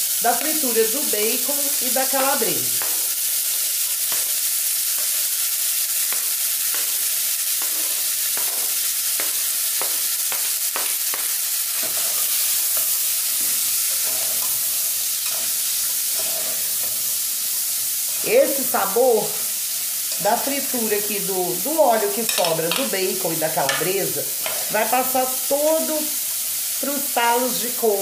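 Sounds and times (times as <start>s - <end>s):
greens sizzling in oil: 0.0s - 28.0s.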